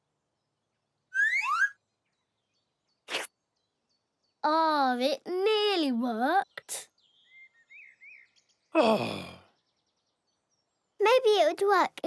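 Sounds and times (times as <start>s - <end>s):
cartoon rising chirps: 1.1s - 1.8s.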